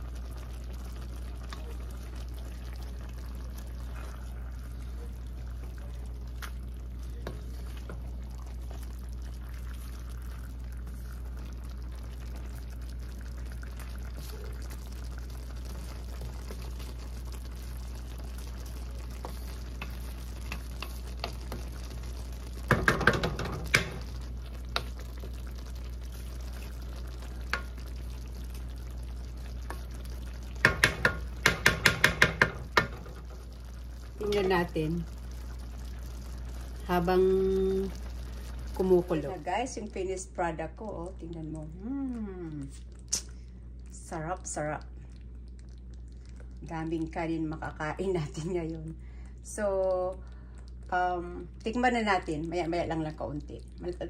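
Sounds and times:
steady low hum: 0.0s - 54.0s
stew simmering: 0.0s - 54.0s
wooden spoon stirring and scraping: 1.2s - 33.6s
spoon tapping against pan: 22.7s - 24.0s, 30.6s - 33.1s.

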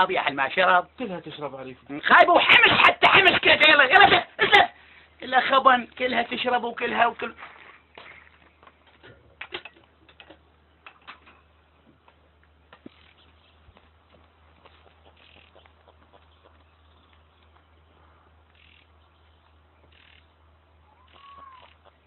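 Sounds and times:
steady low hum: 7.3s - 22.0s.

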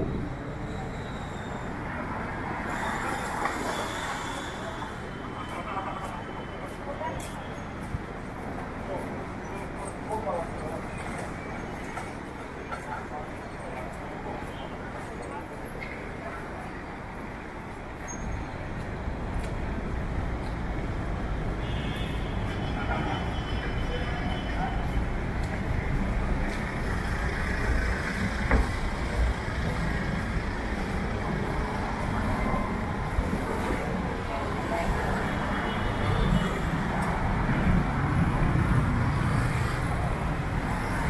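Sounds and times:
cars and motorbikes passing: 24.0s - 41.0s.

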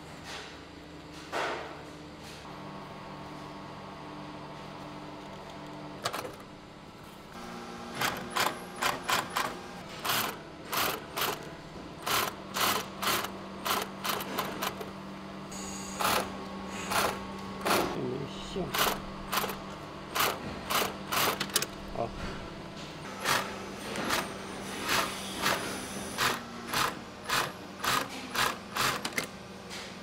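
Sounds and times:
sewing machine stitching bursts: 12.0s - 14.8s, 18.7s - 21.7s, 26.2s - 29.2s.

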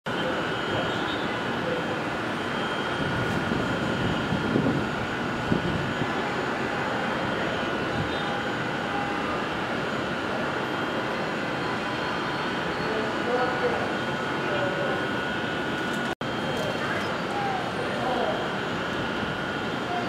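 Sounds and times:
distant city traffic: 0.1s - 20.0s.

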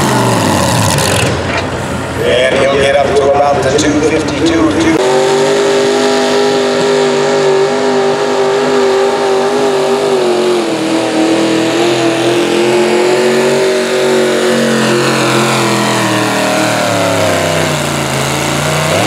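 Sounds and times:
engine winding down: 0.0s - 19.0s
tractor engine at high revs: 0.0s - 19.0s.

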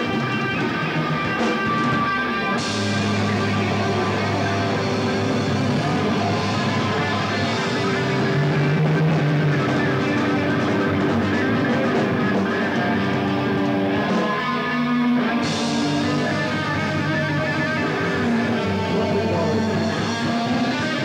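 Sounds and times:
metal band playing: 0.0s - 21.0s.

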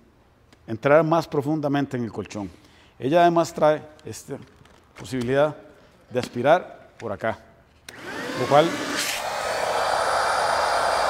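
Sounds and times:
handheld vacuum running: 7.9s - 11.0s.

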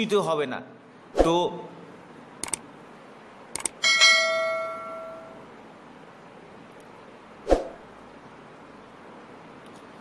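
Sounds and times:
mouse clicks: 2.4s - 2.6s
bright bell ding: 3.8s - 5.4s.

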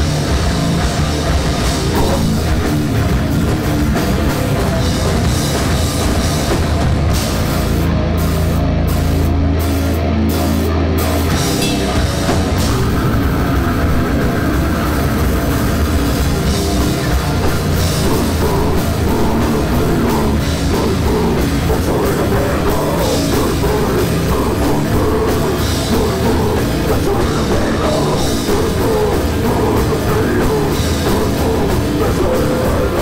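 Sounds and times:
bass guitar: 0.0s - 33.0s
distorted electric guitar: 0.0s - 33.0s
drums: 0.0s - 33.0s.

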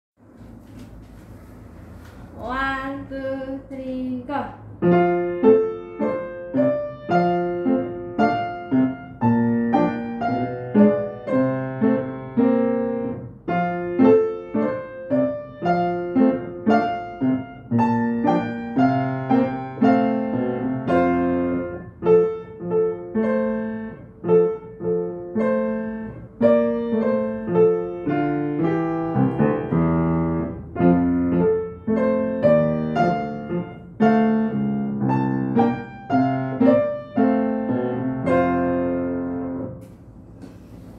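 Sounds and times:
grand piano duet: 1.6s - 40.2s.

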